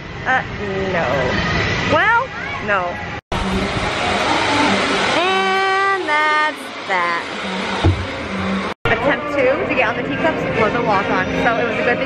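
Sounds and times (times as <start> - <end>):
steady rushing noise of ride: 0.1 - 12.0.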